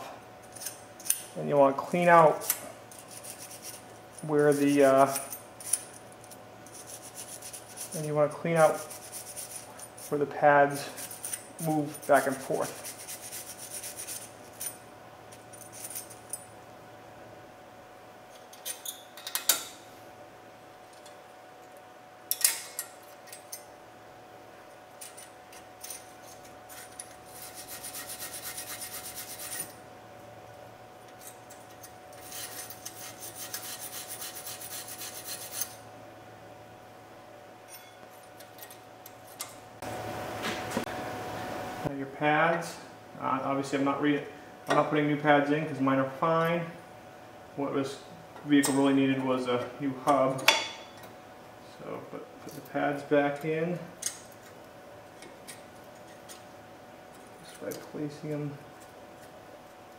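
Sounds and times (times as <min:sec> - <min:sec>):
wire brush scrubbing metal: 0:02.3 - 0:05.8, 0:06.6 - 0:14.6, 0:26.3 - 0:29.8, 0:31.2 - 0:35.8.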